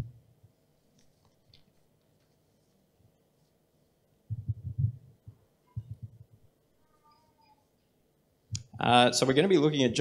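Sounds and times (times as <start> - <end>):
microphone handling thuds: 4.3 - 6.4.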